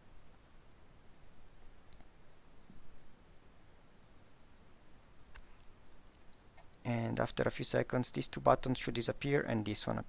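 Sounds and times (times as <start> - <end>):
faint room noise: 0.0 - 10.0
computer mouse clicking: 1.9 - 2.1.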